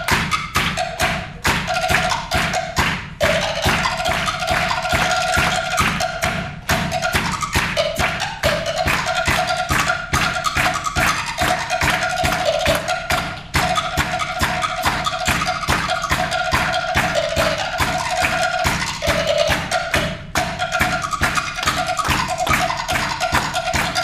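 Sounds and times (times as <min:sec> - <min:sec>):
pitched wood block knocks: 0:00.0 - 0:24.0.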